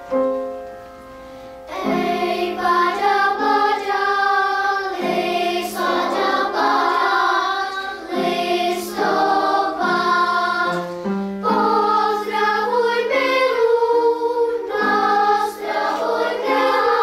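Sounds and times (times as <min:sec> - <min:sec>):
children's choir singing: 0:01.6 - 0:17.0.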